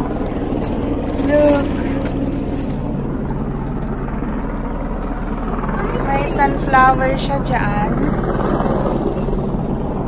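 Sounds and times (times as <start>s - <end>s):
helicopter flying overhead: 0.0s - 10.0s.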